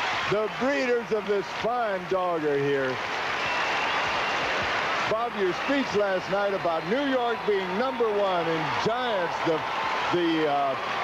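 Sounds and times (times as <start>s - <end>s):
large audience applauding: 0.0s - 11.0s.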